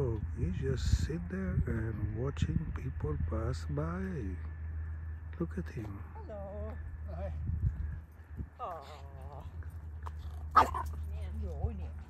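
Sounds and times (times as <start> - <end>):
small dog barking: 10.5 - 10.9.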